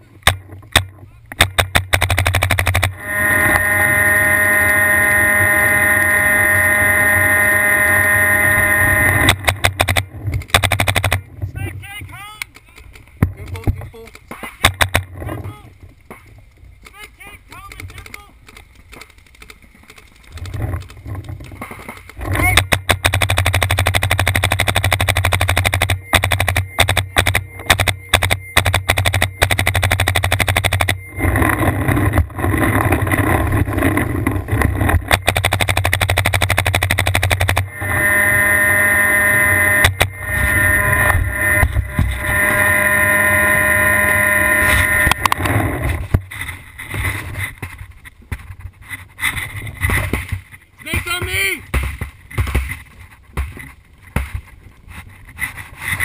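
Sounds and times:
steady held tone: 0.0s - 12.6s, 13.2s - 18.4s, 20.4s - 48.1s
paintball marker firing: 0.2s - 3.0s, 9.2s - 11.3s, 14.3s - 15.1s, 22.6s - 31.0s, 35.0s - 37.7s.

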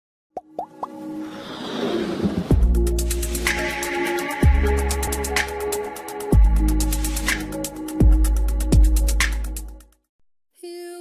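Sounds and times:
musical swell: 0.8s - 6.3s.

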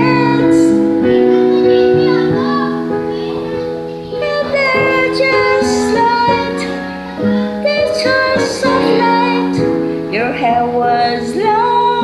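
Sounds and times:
woman singing karaoke: 0.0s - 0.9s, 4.2s - 12.0s
piano backing track: 0.0s - 12.0s.

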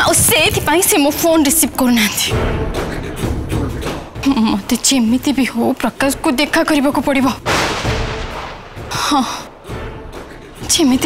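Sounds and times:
dramatic booming hit: 7.4s - 10.2s.

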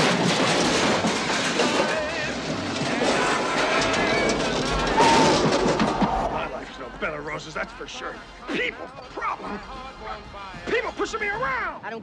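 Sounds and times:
car crashing through trash cans: 0.0s - 6.5s
debris clattering: 0.0s - 10.2s
music with singing: 7.5s - 11.1s.

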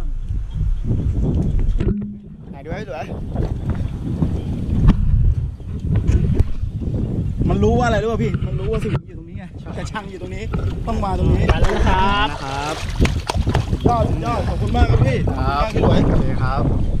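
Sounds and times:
wind rumble on microphone: 0.0s - 17.0s
water splashing and churning: 10.3s - 16.0s.

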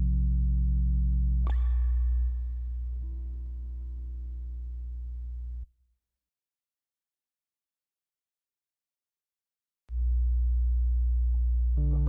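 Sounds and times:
low electronic hum: 0.0s - 5.7s, 9.9s - 12.0s.

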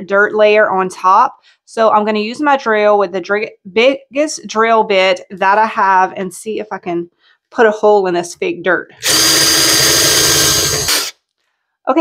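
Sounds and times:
power drill boring: 9.0s - 11.2s.

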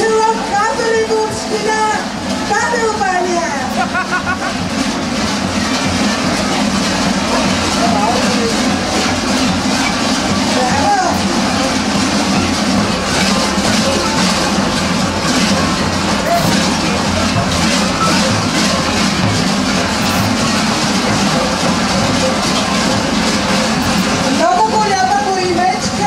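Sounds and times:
large bells clanging: 0.0s - 26.0s.

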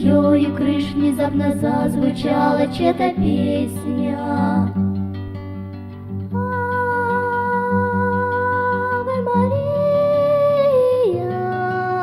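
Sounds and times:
wordless sung vocalise: 0.0s - 4.9s.

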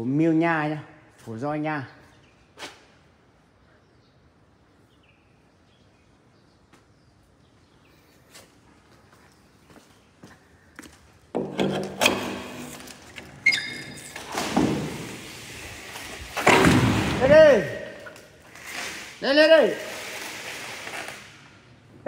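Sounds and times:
metallic knocks and clatter: 11.3s - 15.0s
man shouting: 17.1s - 18.0s.

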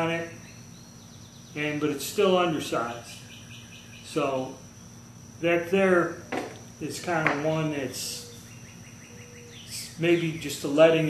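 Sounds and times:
bird chirping: 0.0s - 5.1s, 6.3s - 11.0s.

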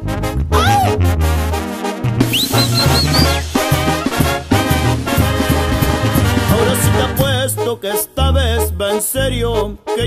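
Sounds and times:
brass band playing: 0.0s - 8.1s.

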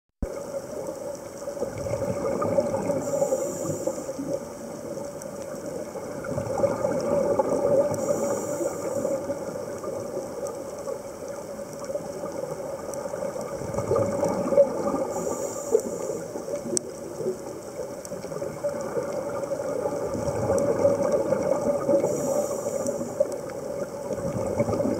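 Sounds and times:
bubbling exhalations: 1.6s - 4.4s
scuba regulator inhalation hiss: 2.8s - 4.8s, 7.6s - 9.6s, 14.9s - 16.6s, 21.8s - 23.5s.

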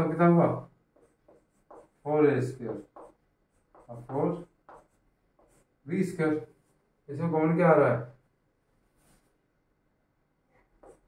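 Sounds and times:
chalk taps on blackboard: 0.9s - 5.7s, 10.8s - 11.0s.

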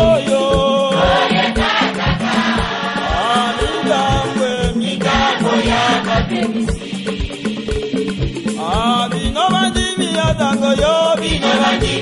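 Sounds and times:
steady drum beat: 0.0s - 12.0s
choir singing in unison: 0.1s - 8.7s, 11.2s - 12.0s.

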